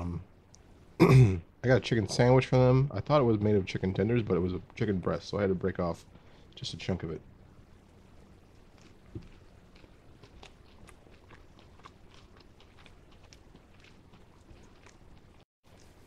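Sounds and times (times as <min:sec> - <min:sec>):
person chewing crunchy food: 0:08.6 - 0:16.0.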